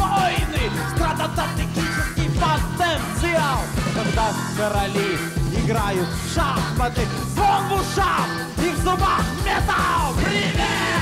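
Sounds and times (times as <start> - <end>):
bass guitar: 0.0 - 11.0
drums beating: 0.0 - 11.0
man singing: 0.0 - 11.0.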